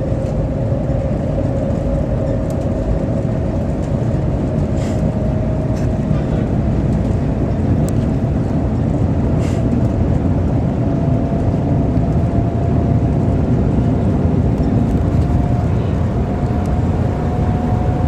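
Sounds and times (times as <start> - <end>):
train cabin low rumble: 0.0 - 18.0.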